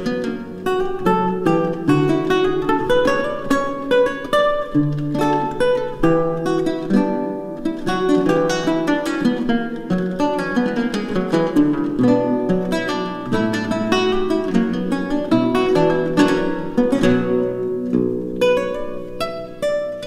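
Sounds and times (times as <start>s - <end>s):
solo lute played fingerstyle: 0.0s - 20.0s.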